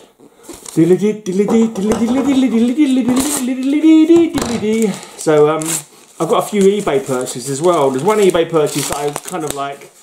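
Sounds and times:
paper-wrapped package rustling: 0:00.4 - 0:01.1, 0:02.3 - 0:10.0.

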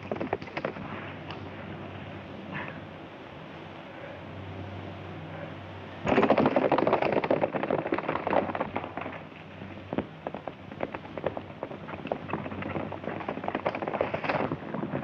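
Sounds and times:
horses galloping on dirt: 0:00.0 - 0:01.6, 0:06.1 - 0:15.0.

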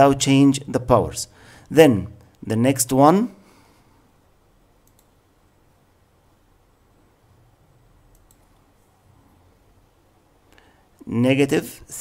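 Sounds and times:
soft clicks: 0:04.8 - 0:05.2, 0:08.1 - 0:08.9.

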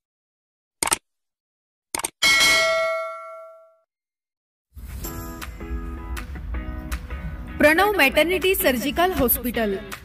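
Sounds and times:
bell ding: 0:02.2 - 0:03.8
music: 0:04.8 - 0:10.0.

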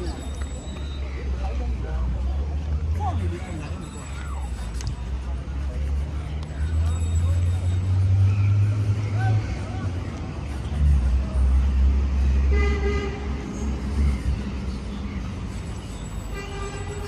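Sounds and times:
faint voices: 0:00.0 - 0:12.5
city traffic rumbling: 0:00.0 - 0:17.0
vehicle horn toot: 0:16.3 - 0:17.0.

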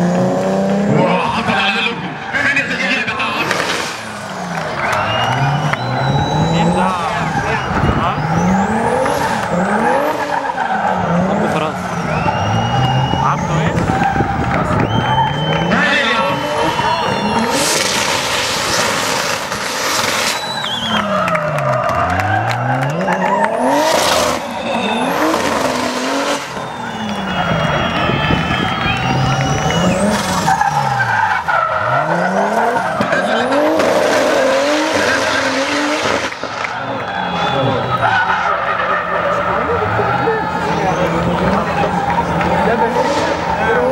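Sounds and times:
car engine revving: 0:00.0 - 0:43.9
tyres squealing and skidding: 0:00.2 - 0:43.9.

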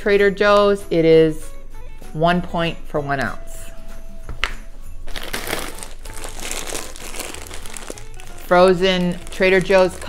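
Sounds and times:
plastic bag crinkling: 0:05.1 - 0:10.0.

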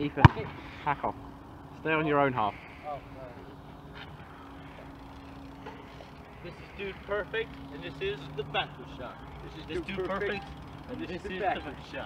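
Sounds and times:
low steady rumble: 0:00.0 - 0:12.0
thin steady hum: 0:00.0 - 0:12.0.

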